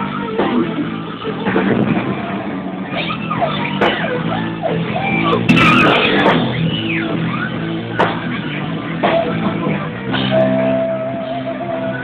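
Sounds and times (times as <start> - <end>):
noisy burst: 0.0 - 12.0
rock band playing: 0.0 - 12.0.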